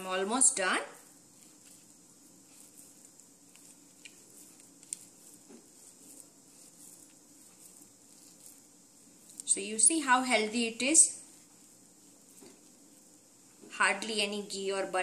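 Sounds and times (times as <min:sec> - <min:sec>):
crumbly mixture crackling: 0:00.0 - 0:15.0.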